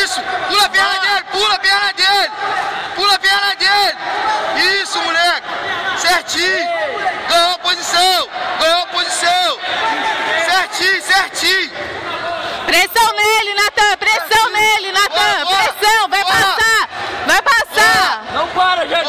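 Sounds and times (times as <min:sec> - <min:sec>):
men shouting: 0:00.0 - 0:18.6
crowd babble: 0:00.0 - 0:19.0.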